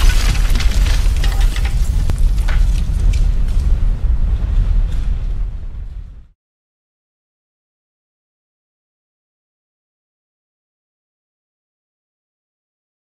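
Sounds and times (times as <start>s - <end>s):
clattering debris hits: 0.0s - 3.8s
explosion rumble: 0.0s - 6.4s.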